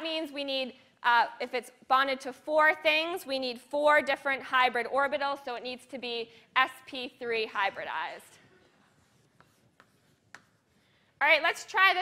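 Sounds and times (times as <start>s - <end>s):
chalk tapping on blackboard: 8.9s - 10.8s.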